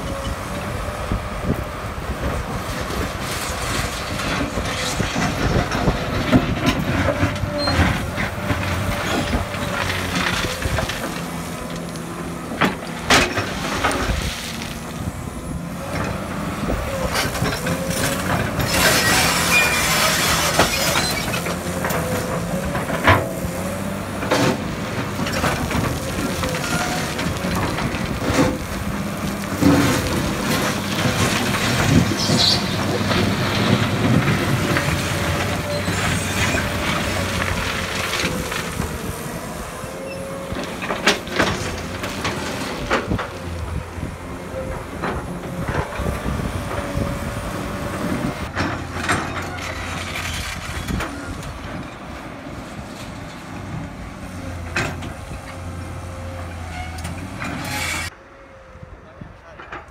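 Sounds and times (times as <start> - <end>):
diesel excavator engine running: 0.0 - 59.9
bucket scraping through gravel: 17.9 - 21.8.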